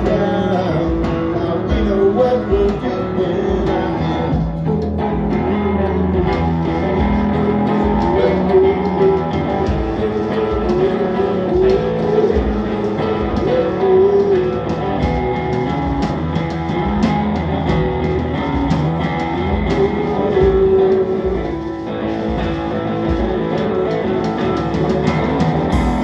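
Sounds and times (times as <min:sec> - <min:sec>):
drum kit kick and cymbal: 0:00.0 - 0:26.0
electric guitar through amplifier: 0:00.0 - 0:26.0.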